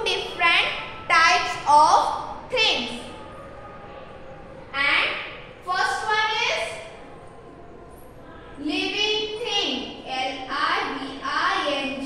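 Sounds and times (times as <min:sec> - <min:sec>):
woman speaking: 0:08.6 - 0:12.0.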